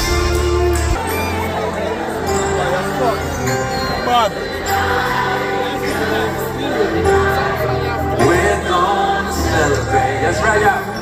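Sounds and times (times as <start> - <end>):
live band over stage speakers: 0.0 - 11.0
several voices singing together: 4.2 - 11.0.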